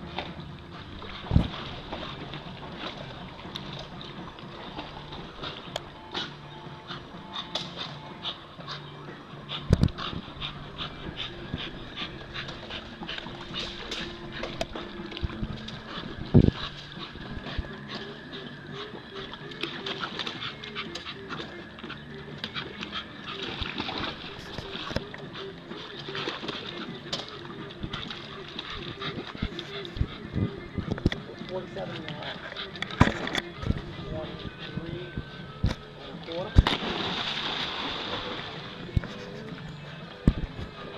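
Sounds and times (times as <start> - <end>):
water splashing: 0.0 - 6.4, 9.6 - 39.6
dog panting: 5.1 - 36.3
dog splashing into pool: 36.6 - 38.8
water spattering and churning: 36.6 - 38.8.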